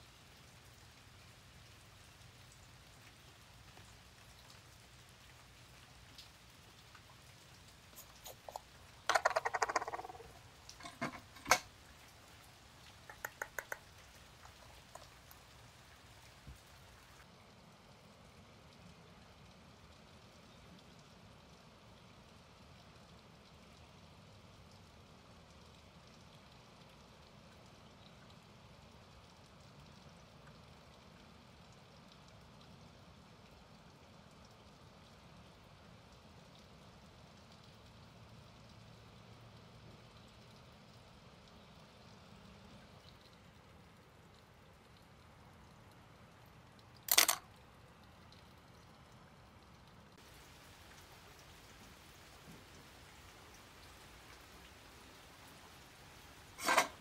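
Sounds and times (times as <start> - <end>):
faint background hiss: 0.0 - 57.0.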